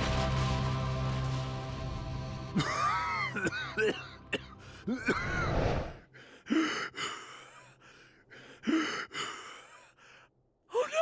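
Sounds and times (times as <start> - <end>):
man gasping for breath: 6.1 - 10.3.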